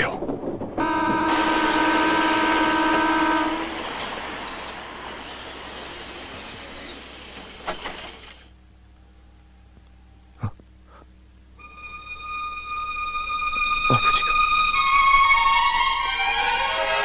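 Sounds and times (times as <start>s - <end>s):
train running: 0.0s - 10.3s, 11.6s - 17.0s
train horn blast: 0.8s - 5.2s.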